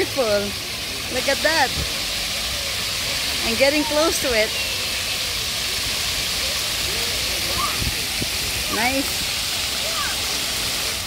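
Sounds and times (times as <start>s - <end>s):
fountain water spraying: 0.0s - 11.0s.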